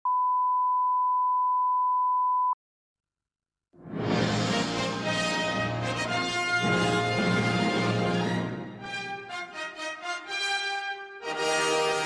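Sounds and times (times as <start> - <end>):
steady pure test tone beep: 0.0 - 2.6.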